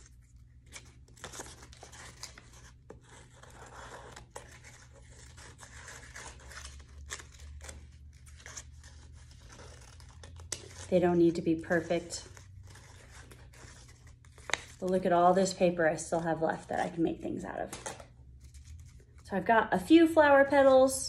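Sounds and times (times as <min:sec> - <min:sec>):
paper rustling and crinkling: 0:00.0 - 0:15.6, 0:16.5 - 0:19.3
scissors snipping paper: 0:00.6 - 0:14.8.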